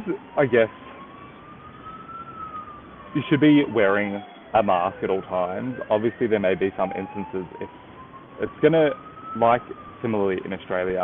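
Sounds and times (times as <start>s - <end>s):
city background noise: 0.0s - 11.0s
siren wailing: 0.0s - 11.0s.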